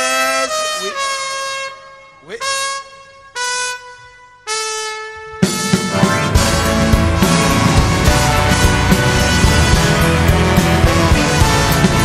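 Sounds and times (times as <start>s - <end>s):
solo trumpet notes: 0.0s - 12.0s.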